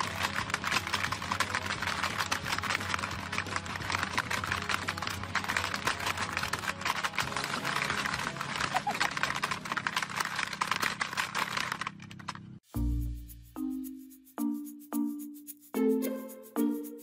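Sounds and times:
pellets rattling on game board: 0:00.0 - 0:12.6.

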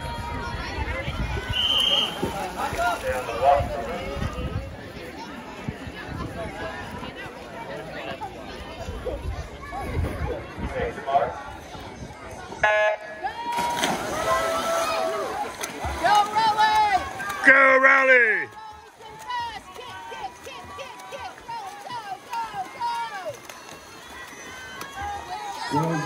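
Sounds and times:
swimmers splashing into water: 0:00.0 - 0:06.0, 0:12.5 - 0:26.0
spectators shouting and cheering: 0:00.0 - 0:26.0.

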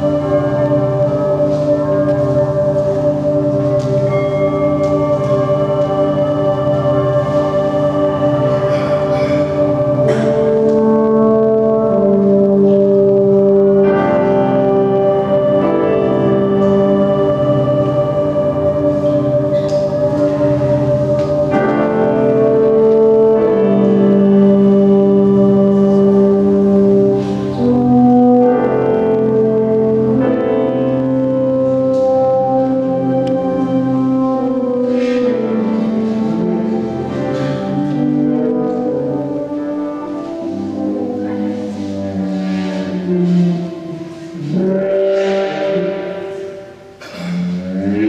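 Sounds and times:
long held brass notes: 0:00.0 - 0:48.0.

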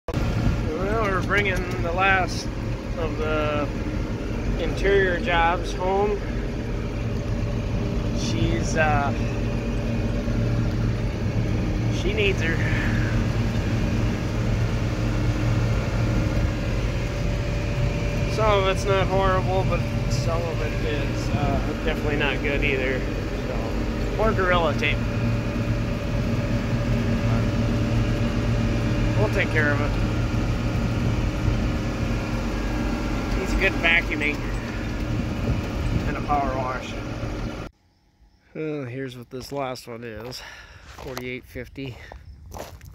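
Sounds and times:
tractor diesel engine running: 0:00.0 - 0:37.8.

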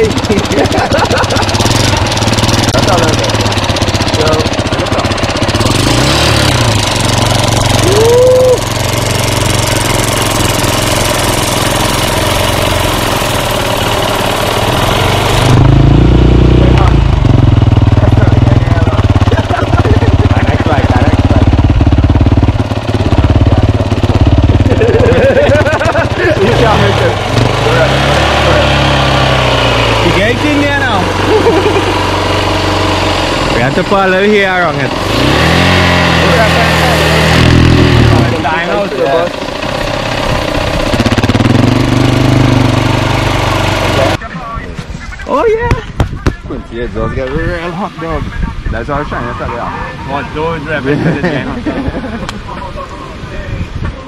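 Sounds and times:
dirt bike engine running: 0:00.0 - 0:44.6.

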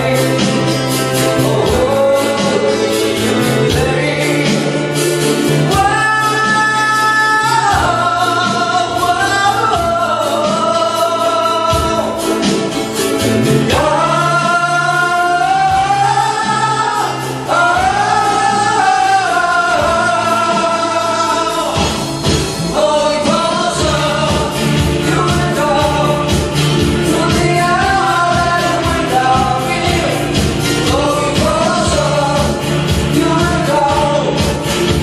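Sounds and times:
guitars: 0:00.0 - 0:35.0
singers holding sliding notes: 0:00.0 - 0:35.0
ukulele ensemble strumming: 0:00.0 - 0:35.0.

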